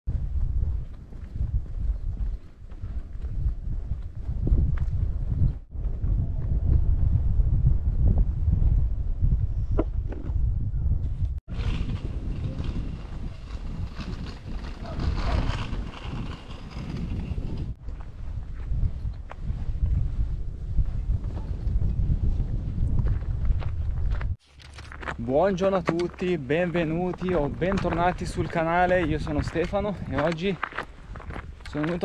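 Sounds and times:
footsteps on path: 0:00.1 - 0:06.8, 0:11.5 - 0:32.0
wind buffeting microphone: 0:00.1 - 0:32.0.

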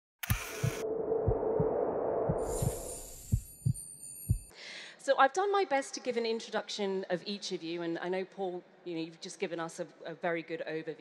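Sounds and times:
low heartbeat-like thumps: 0:00.3 - 0:04.5
shimmering high ringing: 0:02.4 - 0:04.5.

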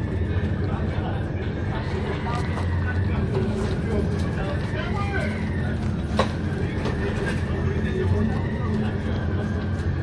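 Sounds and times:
ferry engines rumbling: 0:00.0 - 0:10.0.

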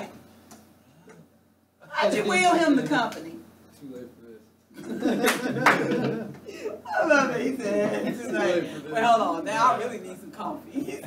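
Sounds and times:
people talking: 0:01.9 - 0:04.0, 0:05.1 - 0:11.0.

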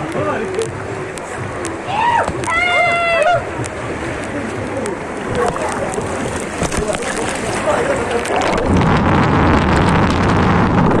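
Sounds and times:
muffled underwater rushing: 0:00.0 - 0:11.0.

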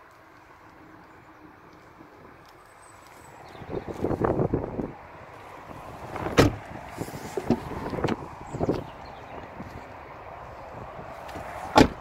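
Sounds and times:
car door shutting: 0:06.1 - 0:08.8, 0:11.3 - 0:12.0.

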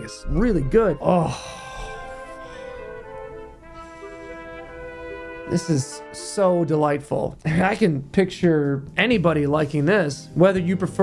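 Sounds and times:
slow sustained background music: 0:00.0 - 0:07.8.

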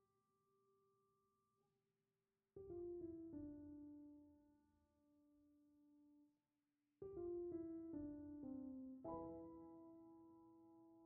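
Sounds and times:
slow solo piano: 0:02.6 - 0:04.6, 0:07.0 - 0:11.0.

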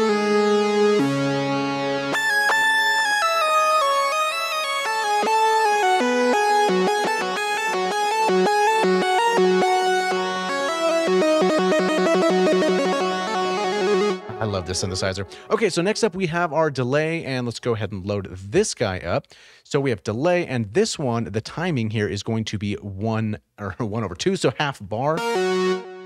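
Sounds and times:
synthesizer lead melody with echo: 0:00.0 - 0:16.7, 0:25.2 - 0:26.0.

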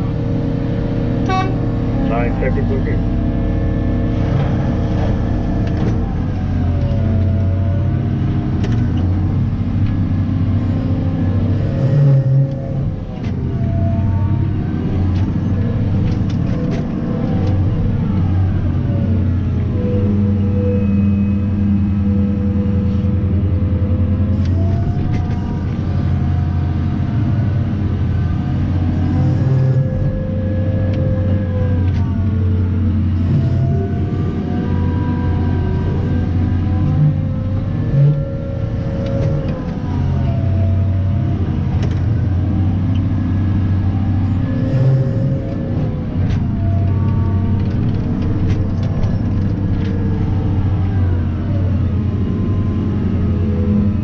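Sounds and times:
diesel engine drone: 0:00.0 - 0:54.0
hydraulic whining: 0:00.0 - 0:54.0.

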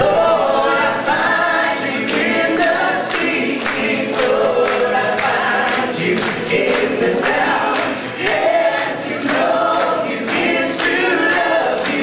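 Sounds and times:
group singing worship song: 0:00.0 - 0:12.0.

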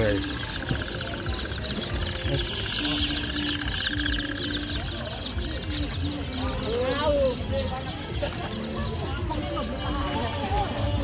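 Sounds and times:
background of people: 0:00.0 - 0:11.0
chicken clucking: 0:00.0 - 0:11.0.

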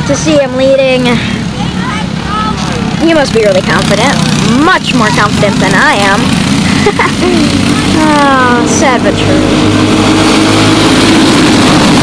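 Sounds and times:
kart engines droning: 0:00.0 - 0:12.0.

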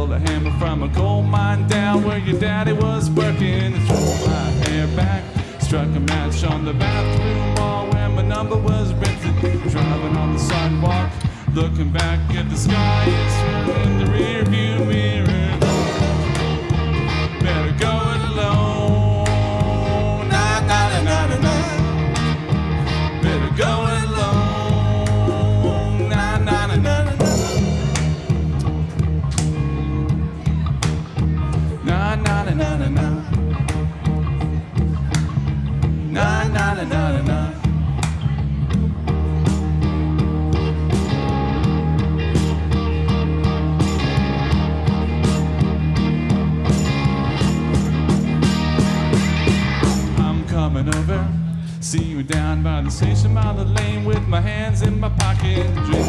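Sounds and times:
person singing: 0:00.0 - 0:22.2, 0:23.1 - 0:28.6, 0:36.1 - 0:37.8, 0:49.8 - 0:56.0
bass line: 0:00.0 - 0:56.0
drums: 0:00.0 - 0:56.0
lead guitar with bent notes: 0:00.0 - 0:56.0
live rock band playing: 0:00.0 - 0:56.0
sliding melody line: 0:01.7 - 0:06.0, 0:12.7 - 0:17.6, 0:24.2 - 0:29.7
cymbal crash: 0:27.2 - 0:29.0.

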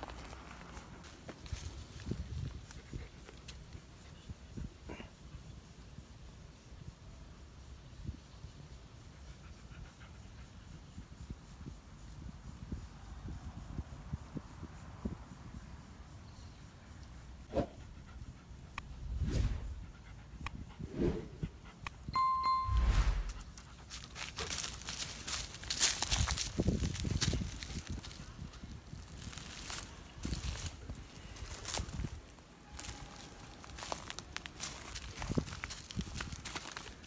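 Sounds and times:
short beep: 0:22.2 - 0:23.4
footsteps through dry leaves: 0:24.0 - 0:32.1, 0:32.8 - 0:37.0.

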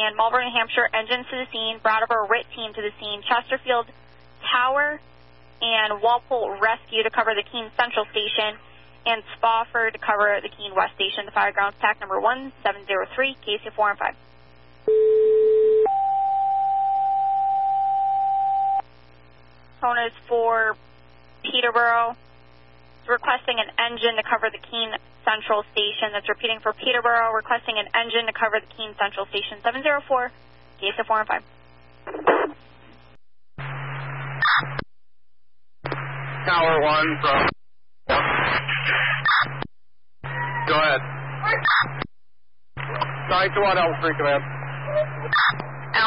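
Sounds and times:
two-way radio hiss: 0:38.1 - 0:39.2, 0:42.8 - 0:44.9.

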